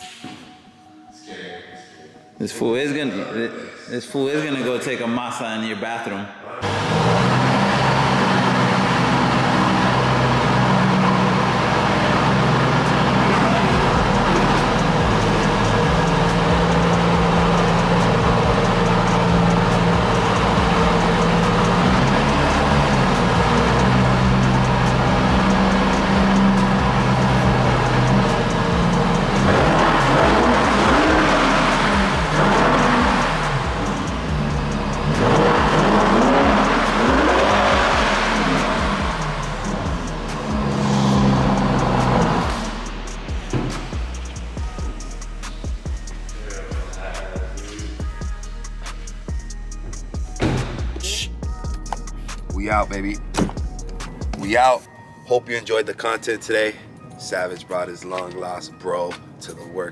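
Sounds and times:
background music with deep bass: 0.0 - 5.8, 6.6 - 59.9
car engine revving: 6.6 - 54.4.

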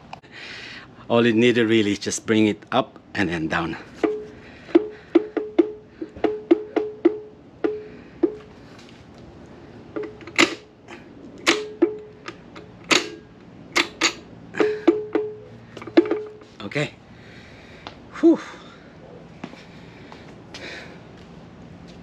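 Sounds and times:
metallic clanks with short ring: 11.4 - 16.5.

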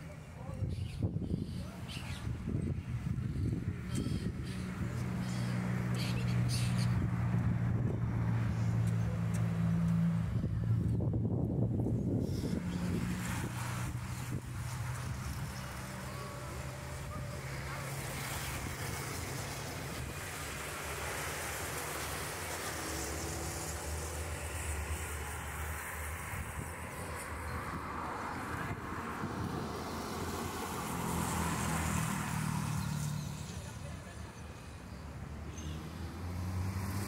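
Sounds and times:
road traffic: 0.0 - 37.0
vehicle passing close by: 2.1 - 37.0.

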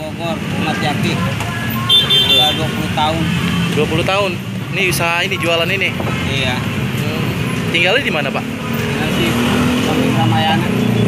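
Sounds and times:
car and motorcycle engines: 0.0 - 11.0.

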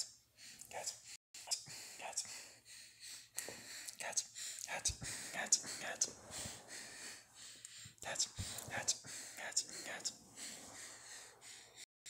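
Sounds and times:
person whispering: 0.6 - 2.4, 3.9 - 6.8, 8.0 - 10.9.

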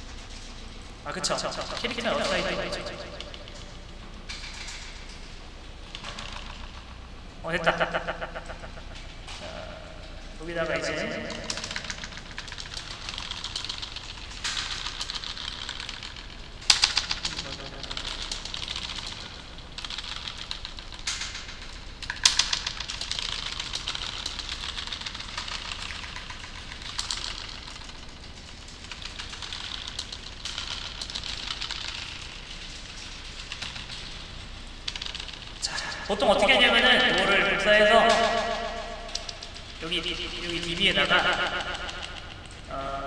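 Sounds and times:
keyboard typing clicks: 1.1 - 5.0, 10.5 - 34.2, 34.9 - 42.7.

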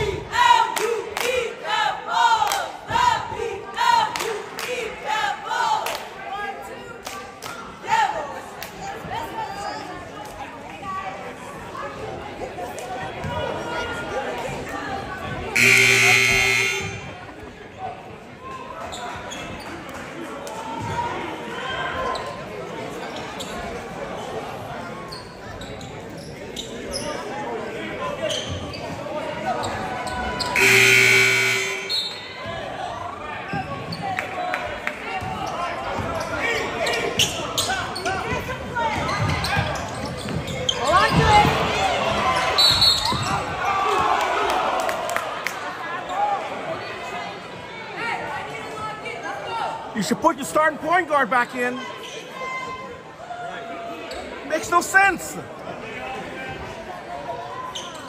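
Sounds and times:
crowd voices: 0.0 - 58.0
scoreboard horn blasts: 15.6 - 17.2, 30.6 - 32.2
sneakers squeaking: 22.0 - 24.4, 25.0 - 27.3, 28.1 - 32.5, 35.2 - 41.6, 42.2 - 43.7, 54.1 - 54.4, 57.6 - 58.0.

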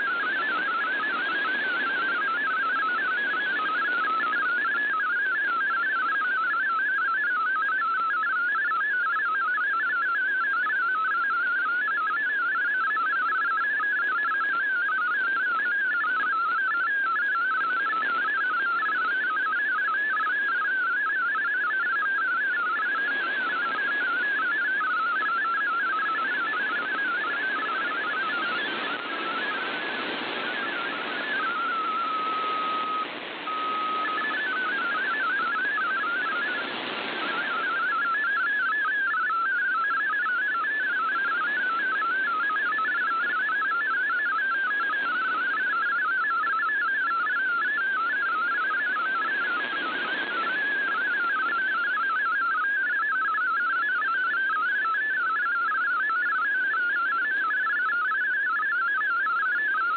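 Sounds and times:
warbling digital radio tones: 0.0 - 8.3, 15.1 - 59.9
steady low radio tone: 0.0 - 59.9
radio static hiss: 25.1 - 38.6, 40.0 - 43.8, 47.2 - 52.2.

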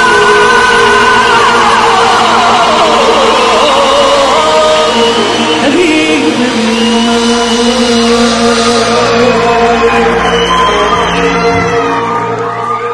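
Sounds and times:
live band playing pop music: 0.0 - 12.9.

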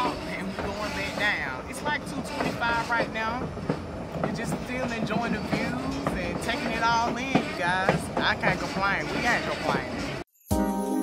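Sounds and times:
person speaking: 0.0 - 3.6, 4.3 - 10.2
train running on rails: 0.0 - 10.2.

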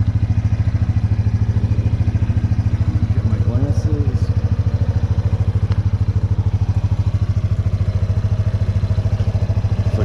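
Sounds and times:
atv engine idling: 0.0 - 10.0.

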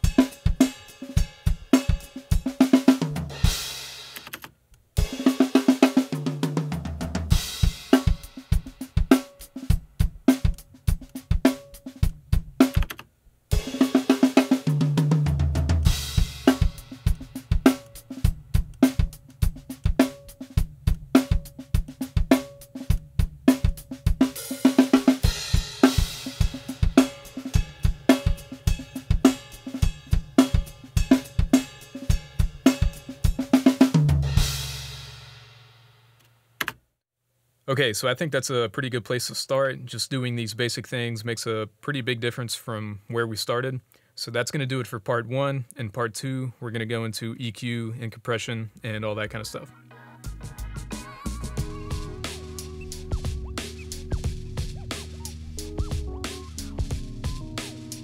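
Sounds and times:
acoustic drum kit groove: 0.0 - 35.8, 50.2 - 58.0
tom drum fills: 5.0 - 12.9, 13.5 - 35.5, 50.3 - 58.0.

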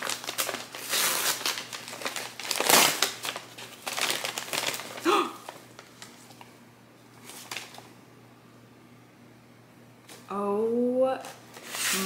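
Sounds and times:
kraft paper crinkling: 0.0 - 6.5, 7.2 - 7.9.

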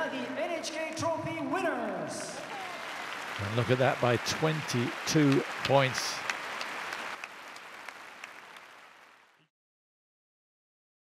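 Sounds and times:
audience applauding: 2.0 - 9.5.

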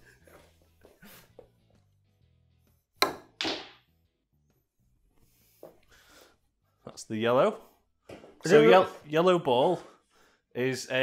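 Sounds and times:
snooker balls colliding: 3.0 - 3.8.

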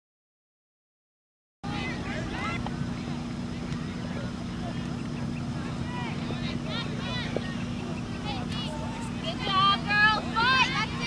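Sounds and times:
distant shouts and calls: 1.6 - 11.0
steady low hum: 1.6 - 11.0.

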